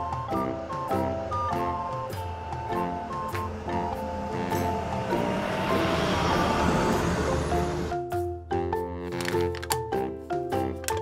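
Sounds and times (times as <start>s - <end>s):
cartoon truck engine rumble: 0.0s - 9.4s
cheerful background music: 0.0s - 11.0s.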